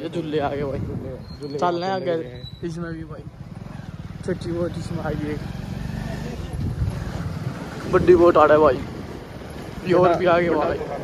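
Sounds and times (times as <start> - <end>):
motorcycle engine rumble: 0.0 - 11.0.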